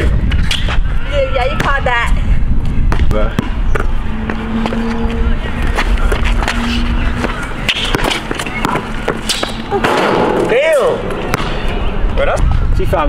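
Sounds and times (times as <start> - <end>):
steady hum: 0.0 - 12.7
low rumble: 1.8 - 13.0.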